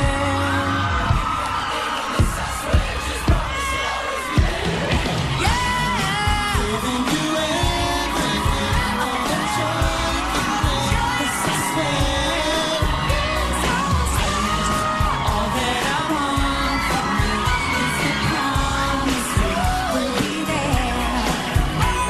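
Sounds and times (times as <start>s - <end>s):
live pop band backing: 0.0s - 22.0s
several voices singing: 0.0s - 22.0s.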